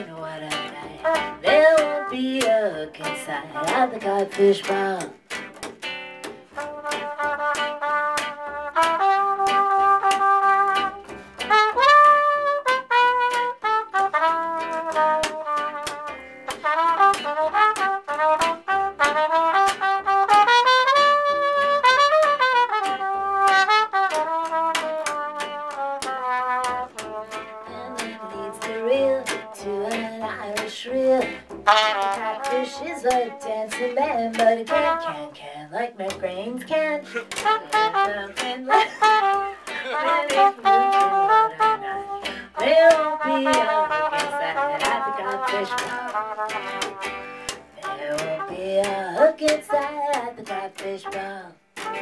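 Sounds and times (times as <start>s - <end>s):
swing rhythm section: 0.0s - 52.0s
trumpet solo: 1.0s - 2.3s, 6.5s - 30.2s, 31.5s - 35.3s, 36.6s - 48.6s, 51.8s - 52.0s
plucked double bass: 22.8s - 35.3s, 36.0s - 47.0s.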